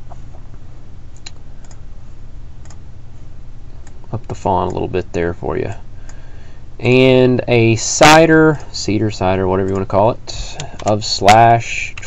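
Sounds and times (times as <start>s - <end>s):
steady low hum: 0.0s - 12.0s
computer mouse clicks: 1.2s - 1.8s.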